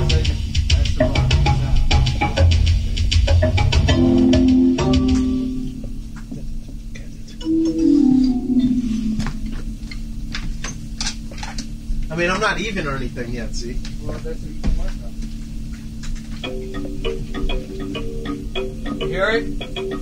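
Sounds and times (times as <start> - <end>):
drum kit playing: 0.0 - 6.2, 7.4 - 11.0
backing track bass and keyboard: 0.0 - 20.0.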